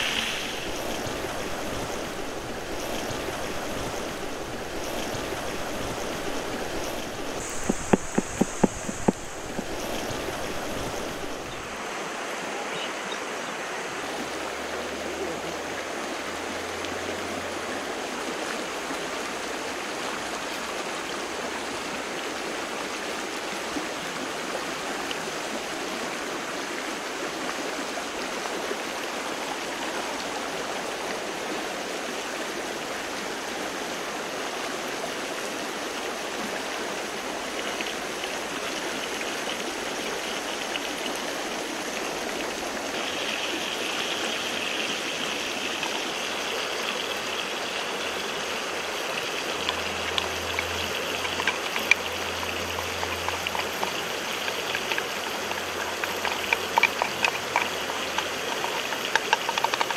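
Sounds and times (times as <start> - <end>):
high steady hiss: 0.0 - 59.9
stream running: 0.0 - 59.9.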